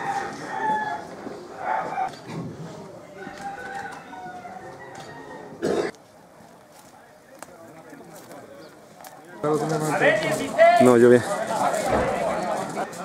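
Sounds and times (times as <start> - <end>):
roosters crowing and clucking: 0.0 - 5.9
murmur of voices: 0.0 - 13.0.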